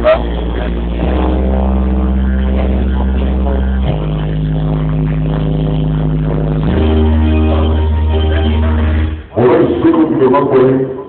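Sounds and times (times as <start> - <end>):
loud dance music over speakers: 0.0 - 10.8.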